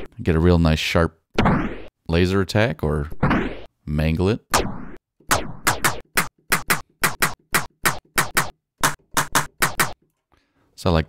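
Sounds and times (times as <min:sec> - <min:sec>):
laser-like zap sample hits: 0:01.4 - 0:01.9.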